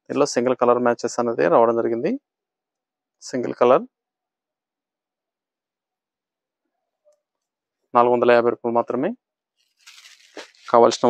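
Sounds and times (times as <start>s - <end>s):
person speaking: 9.9s - 11.0s.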